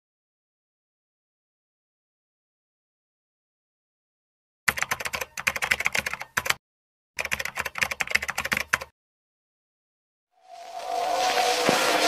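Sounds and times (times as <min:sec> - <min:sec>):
rapid keyboard key clicks: 0:04.7 - 0:06.6, 0:07.2 - 0:08.9.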